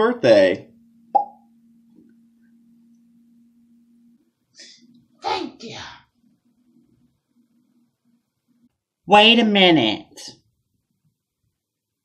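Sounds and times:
hollow mouth pop: 1.1 - 1.4.

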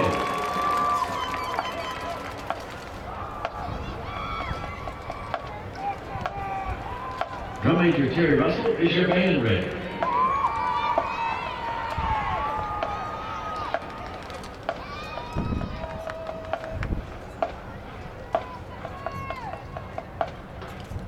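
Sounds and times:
people calling and whooping: 0.0 - 20.3.

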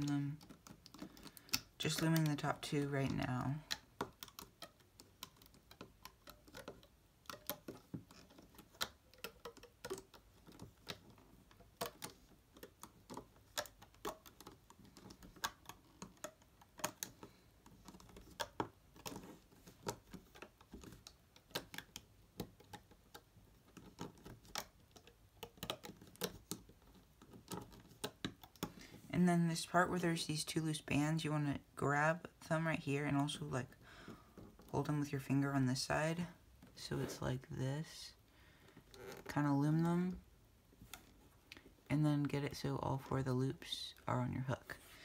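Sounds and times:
plastic hook clicking on pegs: 0.0 - 29.0.

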